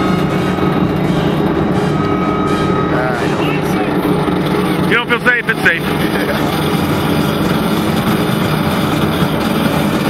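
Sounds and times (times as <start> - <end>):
low mechanical drone: 0.0 - 10.0.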